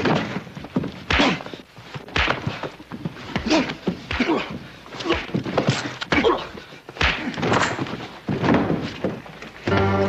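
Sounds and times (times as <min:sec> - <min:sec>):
orchestral music chord: 0:09.7 - 0:10.0.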